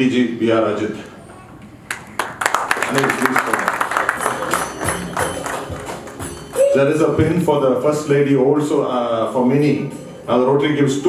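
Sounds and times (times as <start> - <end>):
music with percussive beat: 4.0 - 7.4.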